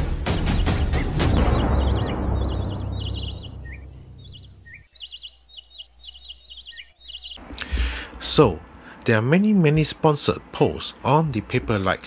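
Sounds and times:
birds chirping in trills: 0.0 - 12.0
low rumble of drum hits: 0.3 - 4.7.

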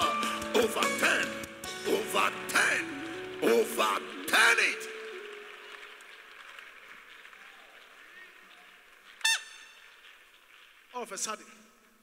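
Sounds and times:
congregation praying: 0.0 - 9.1.

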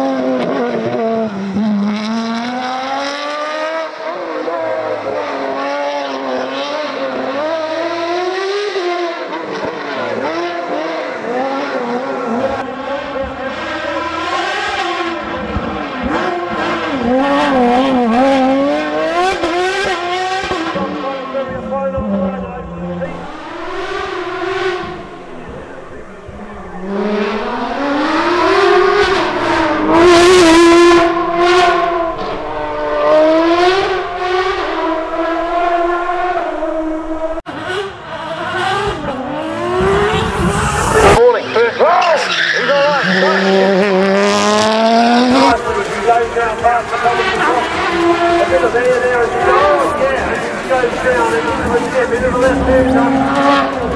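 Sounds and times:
race car engine at high revs: 0.0 - 53.9.

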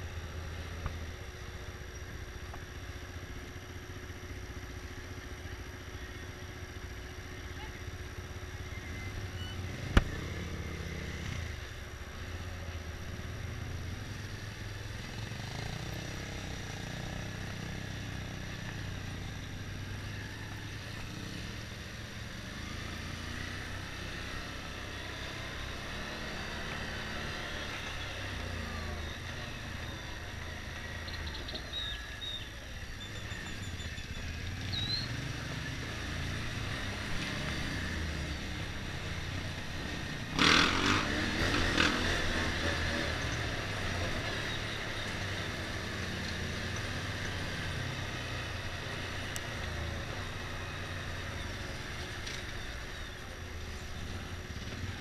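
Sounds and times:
motorcycle engine running: 0.0 - 55.0.

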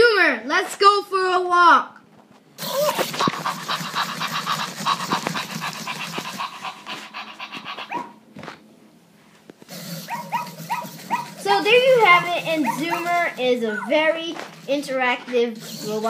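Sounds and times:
fast rhythmic electronic noise: 2.6 - 7.9, 9.7 - 13.6, 15.6 - 16.0
robot dog toy rolling: 2.6 - 8.0, 9.7 - 16.0
electronic pitched yips: 2.6 - 8.2, 9.7 - 11.4.

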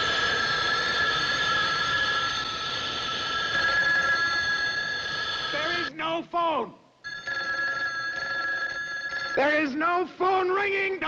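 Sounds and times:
payphone bell ringing: 0.0 - 6.0, 7.0 - 9.9.

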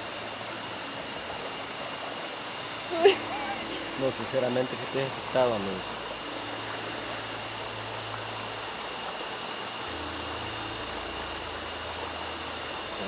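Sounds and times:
crickets trilling: 0.0 - 13.0
river water rushing: 0.0 - 13.0.

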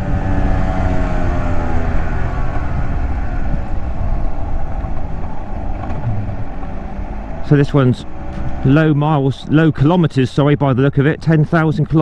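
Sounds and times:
two-stroke motorcycle engine running: 5.8 - 7.0.

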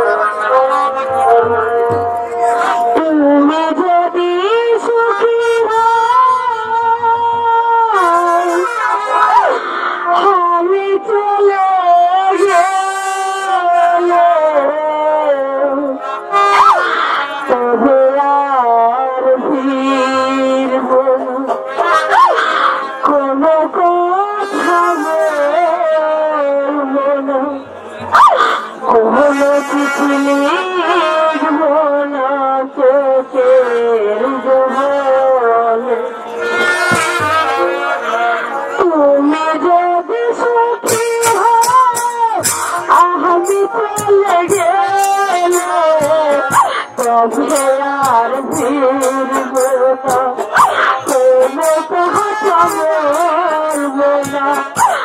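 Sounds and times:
wind instrument melody: 0.0 - 26.9, 27.8 - 55.0
woman singing into microphone: 0.0 - 36.3, 36.9 - 55.0
sharp percussion strokes: 36.3 - 37.9, 40.8 - 55.0.

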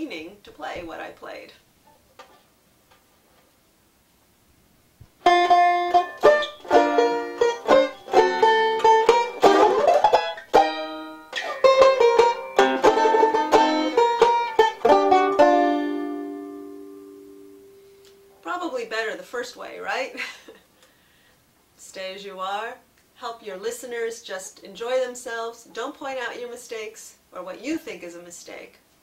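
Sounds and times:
banjo picked chords and notes: 5.2 - 18.4.

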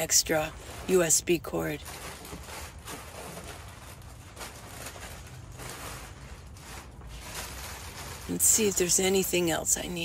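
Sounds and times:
plastic bags rustling: 0.0 - 10.0.

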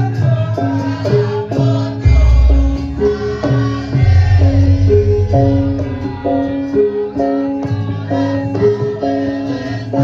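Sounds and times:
gamelan metallophones melody: 0.4 - 10.0
low bass tone: 2.0 - 6.6.

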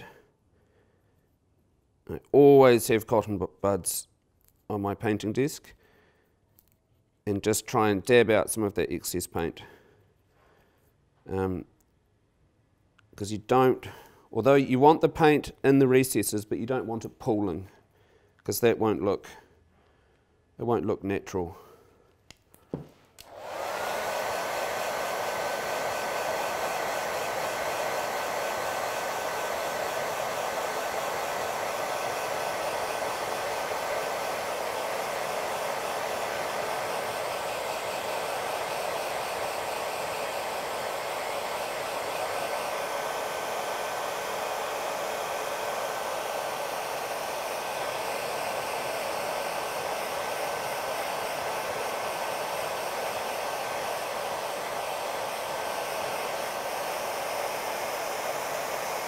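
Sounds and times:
hair dryer whining: 22.3 - 59.0.

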